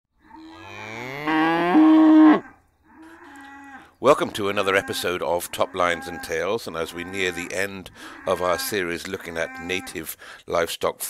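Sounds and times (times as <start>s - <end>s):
cow mooing: 0.2s - 10.0s.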